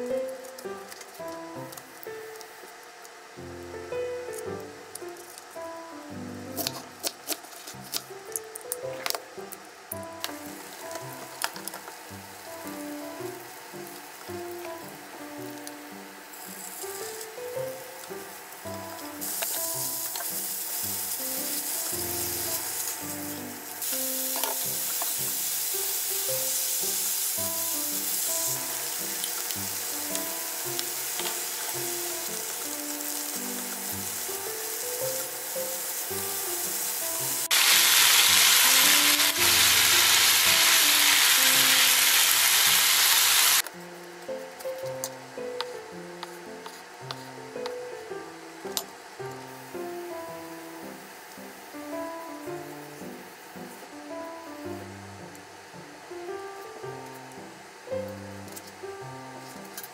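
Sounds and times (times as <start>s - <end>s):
food sizzling in a frying pan: 0.0s - 5.6s, 6.2s - 43.7s
soft background music: 0.0s - 43.0s, 43.6s - 59.9s.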